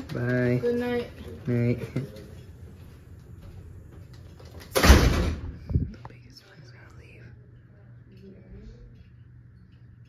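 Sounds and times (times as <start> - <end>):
door closing: 4.4 - 5.7.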